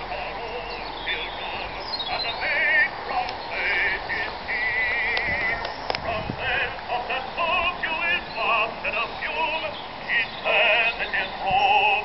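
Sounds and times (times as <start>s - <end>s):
phonograph playing male vocal: 0.0s - 12.0s
faint clicks: 5.1s - 6.1s.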